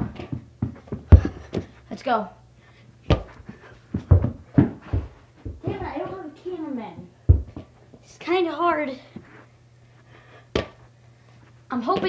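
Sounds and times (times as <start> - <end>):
ball bouncing on carpet: 0.0 - 1.7, 3.1 - 6.2, 7.0 - 7.7, 10.5 - 10.8.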